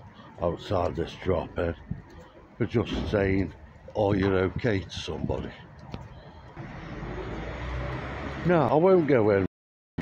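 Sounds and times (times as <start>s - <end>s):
car approaching: 5.8s - 9.3s.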